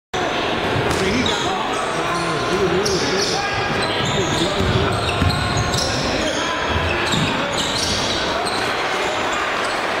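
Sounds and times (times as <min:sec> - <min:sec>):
crowd voices and shouting: 0:00.2 - 0:10.0
sneakers squeaking on floor: 0:00.9 - 0:10.0.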